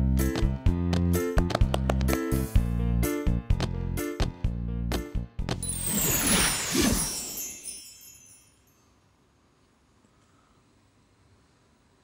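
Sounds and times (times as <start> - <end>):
shimmering chime: 5.6 - 9.1.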